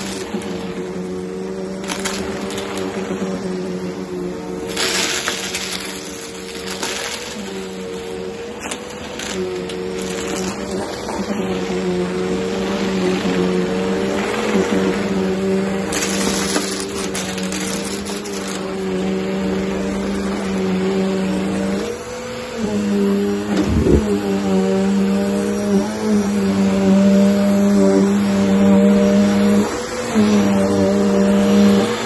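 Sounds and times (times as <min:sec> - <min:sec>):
debris crackling in vacuum: 0:00.0 - 0:22.0, 0:22.8 - 0:32.0
vacuum cleaner motor humming: 0:00.0 - 0:32.0.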